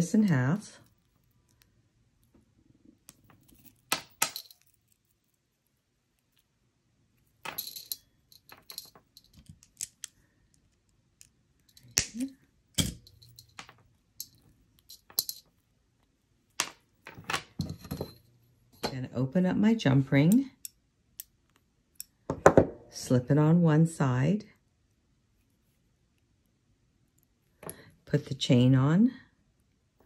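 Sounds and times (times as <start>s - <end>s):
jewelry chain clinking: 3.1s - 5.4s, 7.3s - 9.8s, 11.6s - 15.6s.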